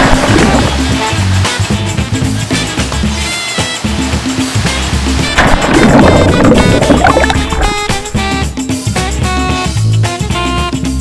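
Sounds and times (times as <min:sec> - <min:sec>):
water churning from a plunge: 0:00.0 - 0:01.4, 0:04.6 - 0:08.4
plucked guitar-like music: 0:04.8 - 0:09.6.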